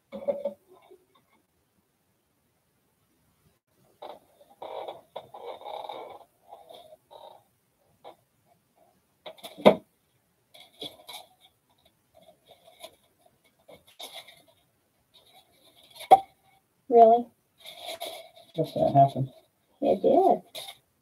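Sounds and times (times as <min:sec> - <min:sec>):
rustling and crinkling of materials: 0:10.5 - 0:16.6, 0:17.5 - 0:21.0.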